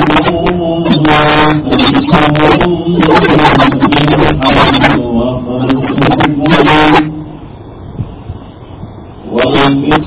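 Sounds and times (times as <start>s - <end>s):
man reciting melodically: 0.0s - 7.6s, 9.2s - 10.0s.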